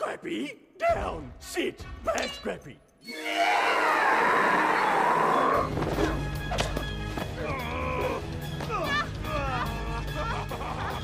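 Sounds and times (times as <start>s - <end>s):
film score music with low bass: 5.6s - 11.0s.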